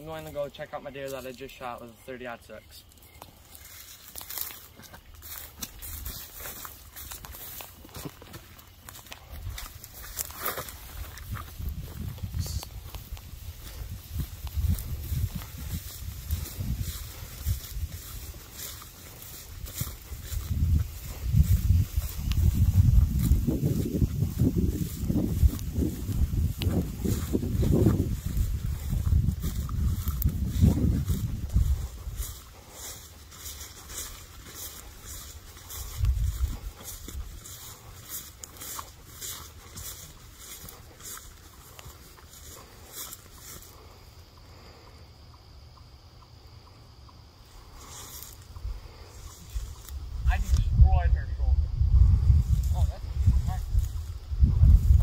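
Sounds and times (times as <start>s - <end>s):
footsteps walking through grass: 0.0s - 45.6s, 47.4s - 50.9s, 51.7s - 55.0s
low rumble on microphone: 11.0s - 18.6s, 19.4s - 32.4s, 48.7s - 55.0s.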